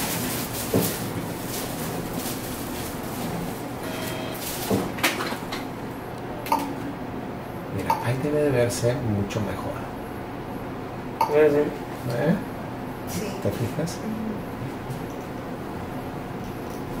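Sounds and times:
steady room noise: 0.0s - 17.0s
short electronic beep: 3.8s - 4.4s.

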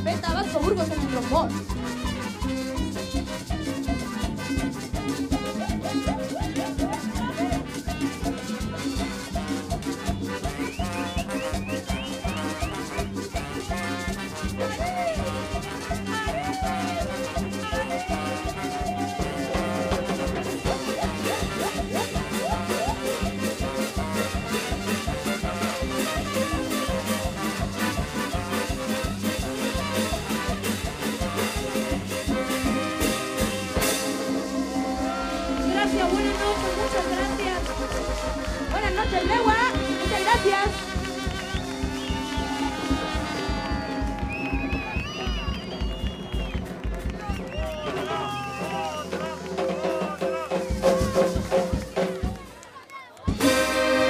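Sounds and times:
trumpet and trombone: 0.0s - 45.7s, 46.6s - 52.3s, 53.3s - 54.0s
band playing dance music: 0.0s - 54.0s
congas and drum kit: 0.0s - 54.0s.

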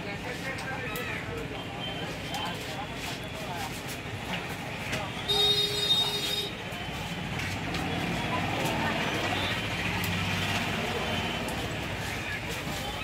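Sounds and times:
traffic hum: 0.0s - 13.0s.

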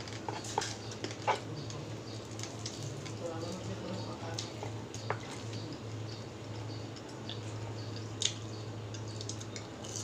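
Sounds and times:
wet chewing and smacking: 0.2s - 3.2s, 4.4s - 10.0s.

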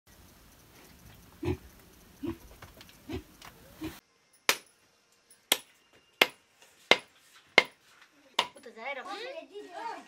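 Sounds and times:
pig grunting: 1.4s - 2.4s, 3.0s - 4.0s.

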